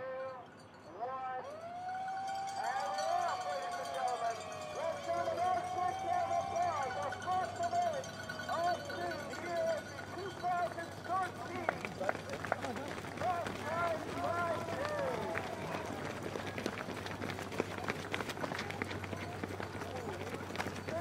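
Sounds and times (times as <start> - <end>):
spectators cheering: 1.4 - 16.9
runners' footsteps on pavement: 1.6 - 21.0.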